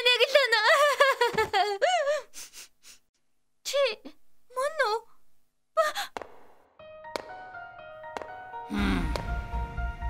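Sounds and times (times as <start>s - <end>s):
music: 6.8s - 10.0s.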